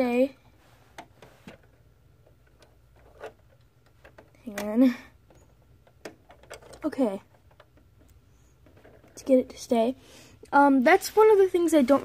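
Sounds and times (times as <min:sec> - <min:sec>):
plastic pieces clicking: 0:01.5 - 0:09.2.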